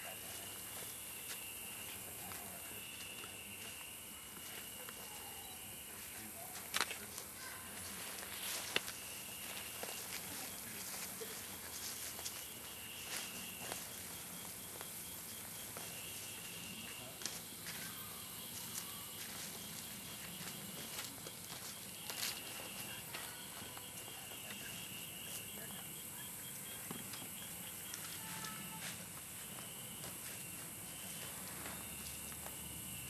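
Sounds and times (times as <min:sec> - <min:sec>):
insects chirping: 0:00.0 - 0:33.0
footsteps on dirt: 0:15.7 - 0:25.6.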